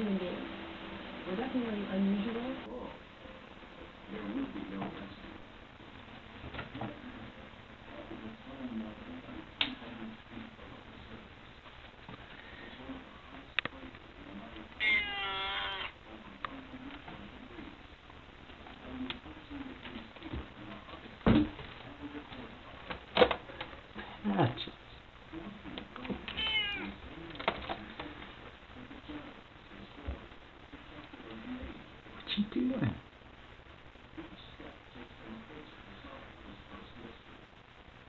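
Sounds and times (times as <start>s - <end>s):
cat meowing: 14.8s - 16.0s, 26.3s - 27.0s.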